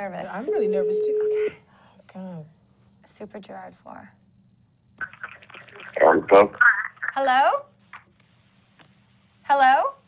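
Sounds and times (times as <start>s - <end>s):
voice over speakerphone: 5.9s - 6.9s.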